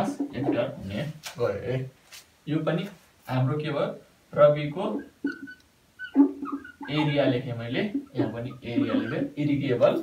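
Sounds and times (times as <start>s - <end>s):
whiteboard marker squeaking: 5.0s - 10.0s.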